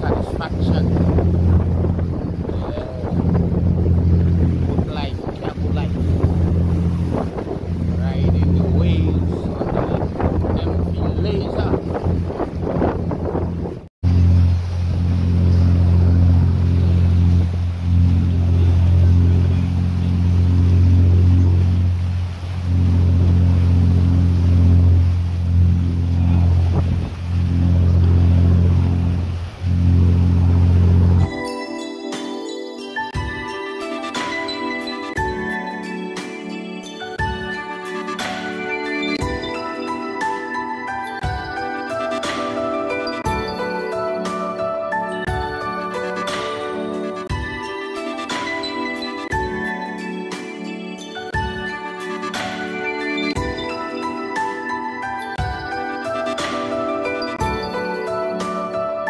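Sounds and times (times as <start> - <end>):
wind buffeting microphone: 0.0 - 31.3
bow wave rushing: 0.0 - 31.5
boat engine drone: 0.0 - 32.2, 32.9 - 59.0
music with jingles: 31.2 - 59.0.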